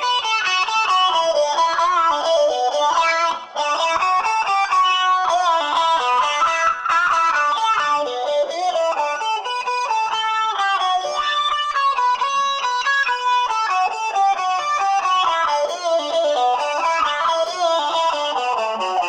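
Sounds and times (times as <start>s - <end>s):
talk box electric guitar solo: 0.0s - 19.0s.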